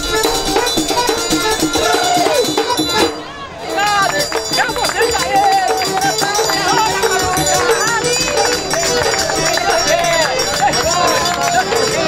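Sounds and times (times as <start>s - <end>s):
festive music with percussion beat: 0.0s - 12.0s
voices shouting and singing: 0.0s - 12.0s.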